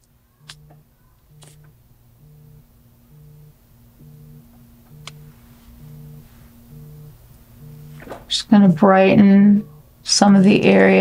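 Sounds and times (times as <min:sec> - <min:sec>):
steady faint tone: 0:00.3 - 0:11.0
pulsing low hum: 0:00.4 - 0:10.8.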